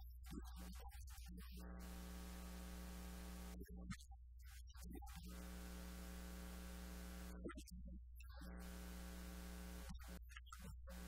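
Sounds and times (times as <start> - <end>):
electrical mains hum: 5.2 - 7.4.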